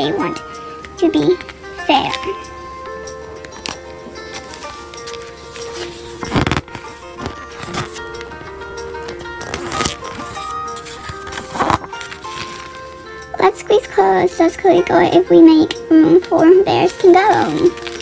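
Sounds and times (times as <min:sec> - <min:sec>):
background music with held notes: 0:00.0 - 0:18.0
book pages rustling: 0:01.3 - 0:08.4, 0:09.0 - 0:13.0, 0:16.9 - 0:18.0.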